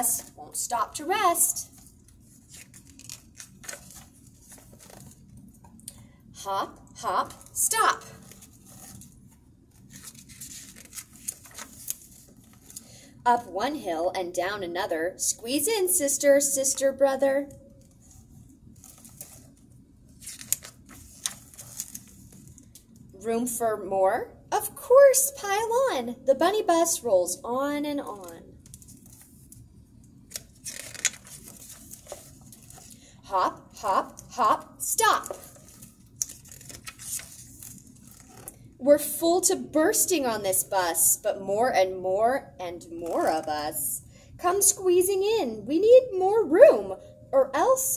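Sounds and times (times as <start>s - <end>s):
book pages rustling: 1.7s - 5.8s, 8.1s - 12.9s, 17.8s - 22.7s, 28.2s - 33.0s, 35.1s - 38.6s.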